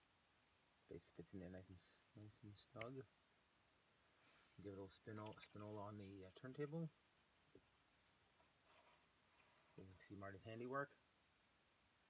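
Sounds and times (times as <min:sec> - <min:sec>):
soft rustle: 0:00.1 - 0:12.0
man speaking: 0:00.9 - 0:03.1, 0:04.6 - 0:07.0, 0:09.8 - 0:11.0.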